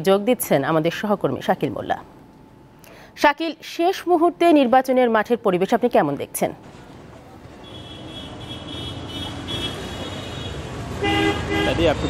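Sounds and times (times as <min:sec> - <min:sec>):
traffic rumble: 0:04.2 - 0:12.0
vehicle horn honks: 0:07.6 - 0:12.0.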